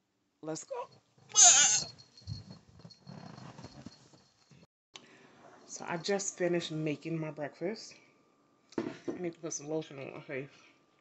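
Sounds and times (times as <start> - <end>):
robe and bedding rustling: 2.0 - 4.6.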